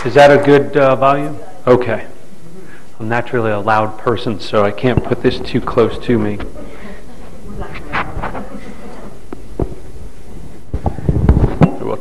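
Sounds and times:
steady low hum: 0:00.0 - 0:12.0
microphone handling thumps and rubs: 0:07.3 - 0:11.8.

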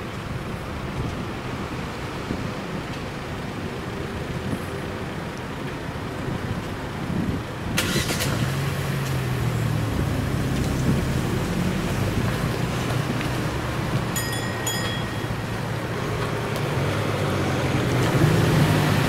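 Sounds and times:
road traffic noise: 0:00.0 - 0:19.0
car engine starting and idling: 0:07.5 - 0:14.2.

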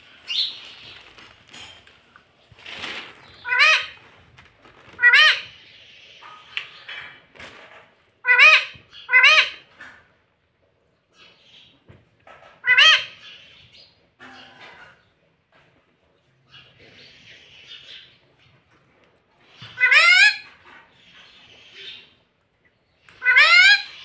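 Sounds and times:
parakeet squawking: 0:03.4 - 0:04.0, 0:04.9 - 0:05.7, 0:08.2 - 0:09.6, 0:12.6 - 0:13.4, 0:19.7 - 0:20.5, 0:23.2 - 0:24.0.

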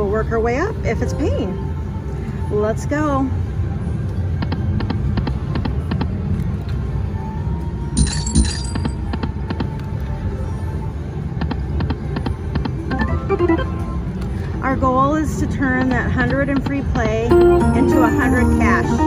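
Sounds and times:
casino background noise: 0:08.0 - 0:19.0
slot machine music and effects: 0:12.6 - 0:14.3, 0:17.2 - 0:19.0.

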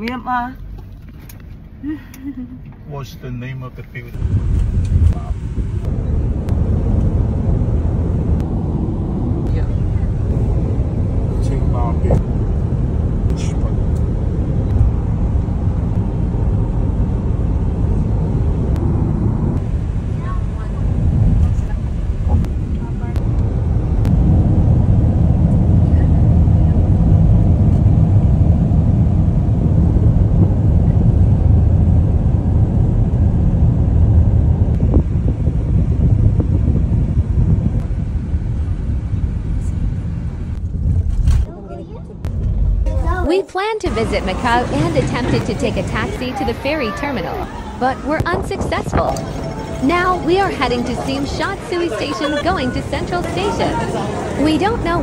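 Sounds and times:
car tyres and engine rumble: 0:00.0 - 0:55.0.

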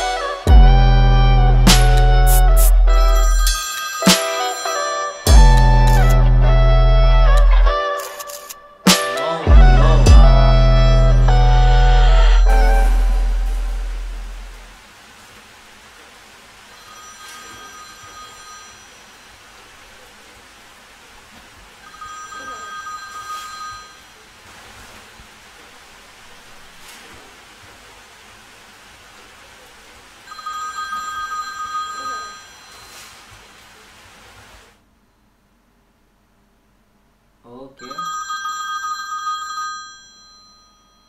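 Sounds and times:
telephone ringing: 0:02.9 - 0:06.7, 0:16.8 - 0:19.2, 0:21.8 - 0:24.1, 0:30.3 - 0:33.1, 0:37.8 - 0:41.0
low hiss: 0:10.8 - 0:38.0.

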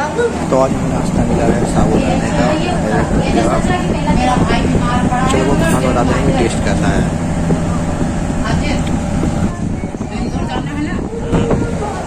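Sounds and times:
indistinct voices talking: 0:00.0 - 0:12.0
steady low hum: 0:00.0 - 0:12.0.

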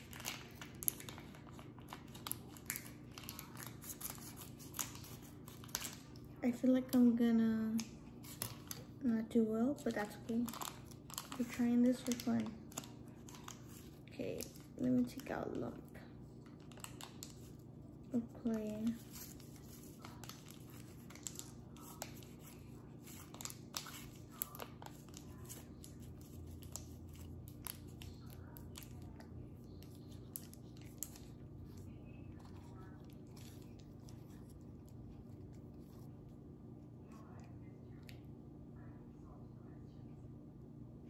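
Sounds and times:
plastic bag crinkling: 0:00.0 - 0:06.9, 0:09.8 - 0:15.6, 0:16.4 - 0:29.0.

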